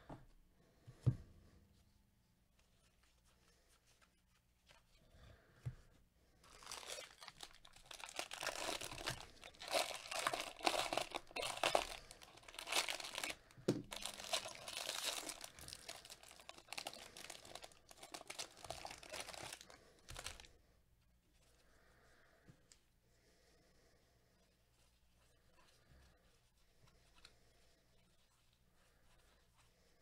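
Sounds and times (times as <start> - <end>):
foil wrapper tearing and crinkling: 6.5 - 20.5.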